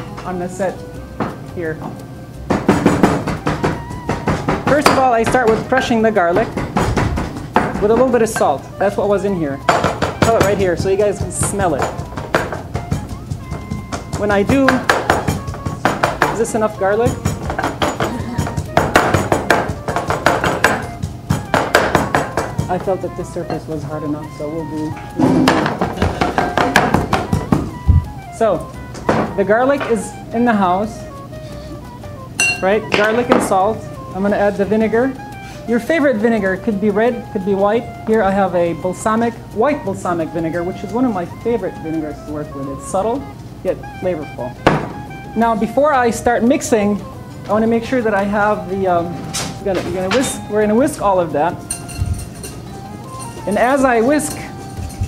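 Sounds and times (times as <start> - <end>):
garlic crushing knocks: 2.5 - 5.6, 6.4 - 8.2, 17.3 - 22.7, 25.1 - 27.8, 44.6 - 45.2.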